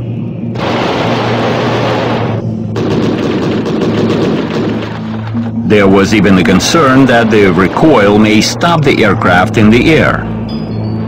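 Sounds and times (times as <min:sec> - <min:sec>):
rotary cannon firing bursts: 0:00.6 - 0:05.3.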